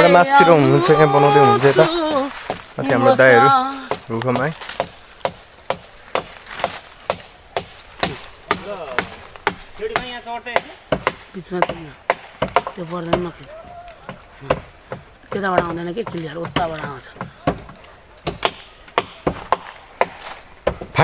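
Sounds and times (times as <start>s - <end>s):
tool knocking on wooden poles: 3.8s - 13.3s, 14.0s - 21.0s.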